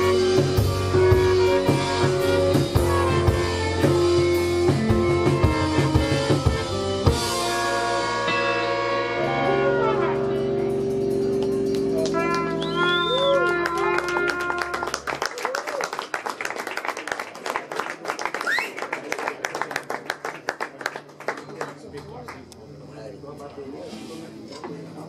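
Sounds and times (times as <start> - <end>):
trumpets: 0.0 - 11.1, 12.0 - 15.3
drum kit: 0.0 - 15.0
live band playing: 0.0 - 15.3.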